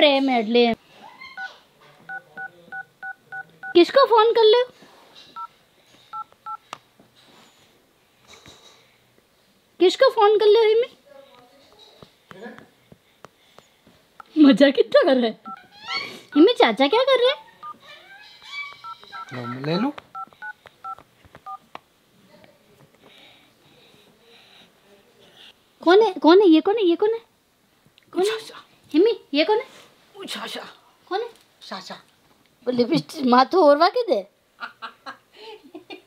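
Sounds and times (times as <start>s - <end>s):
phone keypad beeps: 18.8s - 21.6s.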